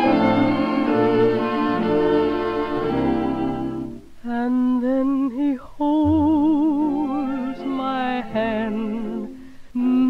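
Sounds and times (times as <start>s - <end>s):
woman singing wordless melody: 0.0s - 10.0s
low accompaniment: 5.9s - 7.7s.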